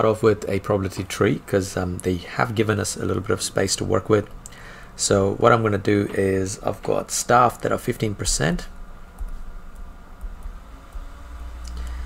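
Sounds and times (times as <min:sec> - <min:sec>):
low background rumble: 0:00.2 - 0:12.0
stylus tapping and scratching on screen: 0:09.0 - 0:11.9.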